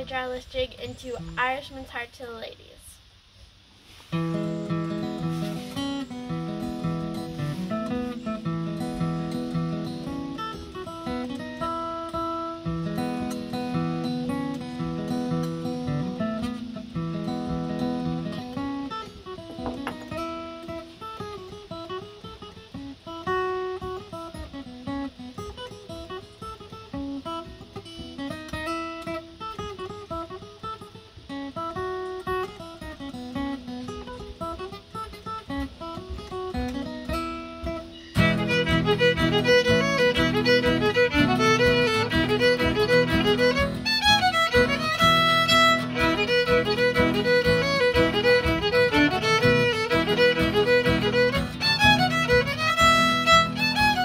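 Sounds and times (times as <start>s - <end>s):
acoustic guitar accompaniment: 0.0s - 2.9s, 3.8s - 54.0s
fiddle playing a jig: 36.6s - 54.0s.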